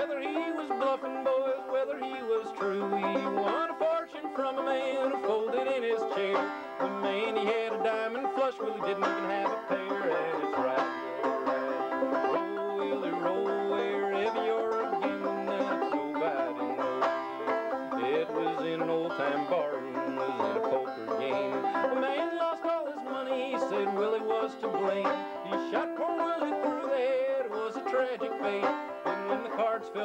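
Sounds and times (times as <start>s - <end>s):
solo banjo picking: 0.0s - 30.0s.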